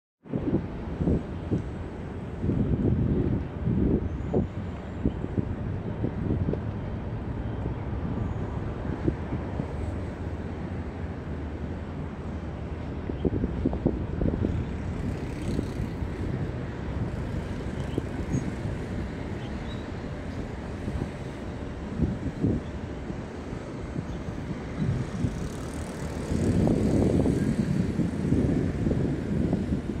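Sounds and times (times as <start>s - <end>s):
wind buffeting microphone: 0.2s - 30.0s.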